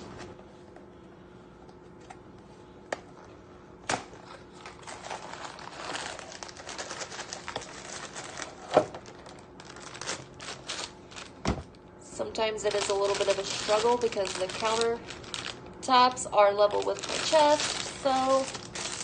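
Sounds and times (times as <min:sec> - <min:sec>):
paper and plastic crinkling: 0:04.2 - 0:11.8, 0:12.6 - 0:15.7, 0:16.6 - 0:19.0.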